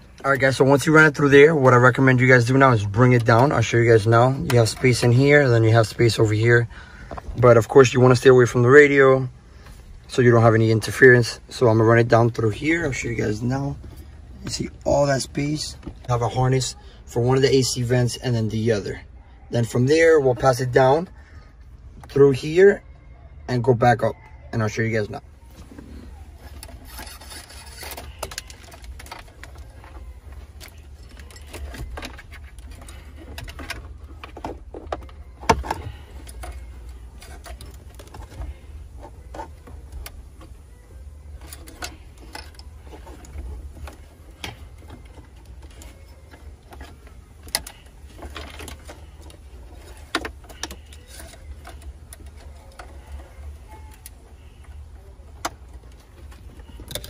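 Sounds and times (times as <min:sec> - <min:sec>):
clicks and rustles of wire: 0:25.2 - 0:57.0.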